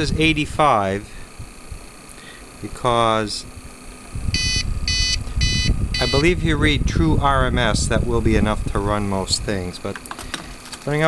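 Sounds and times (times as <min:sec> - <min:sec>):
short high-pitched alarm beeps: 0:04.3 - 0:06.4.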